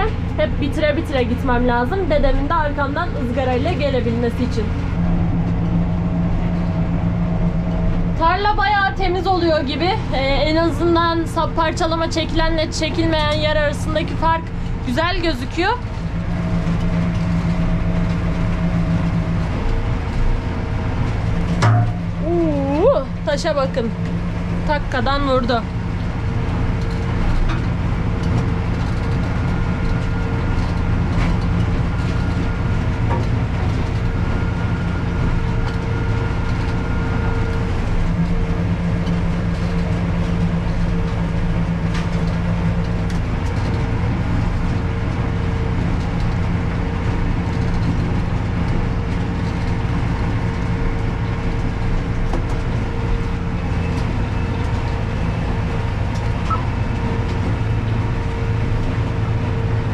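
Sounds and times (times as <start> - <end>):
tractor engine droning: 0.0 - 59.9
steady tone: 14.4 - 25.4, 56.4 - 57.0.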